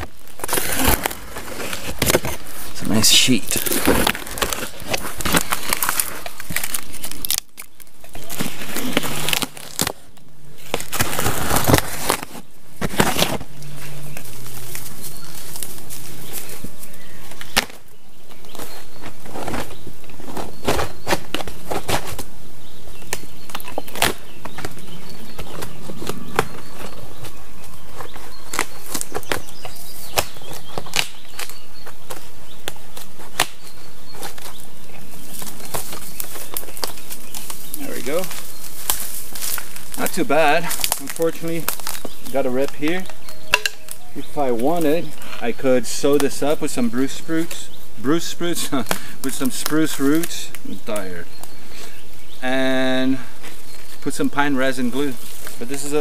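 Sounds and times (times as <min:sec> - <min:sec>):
birch bark crackling and snapping: 0:00.0 - 0:56.0
bark sheet flapping rustle: 0:10.9 - 0:17.5.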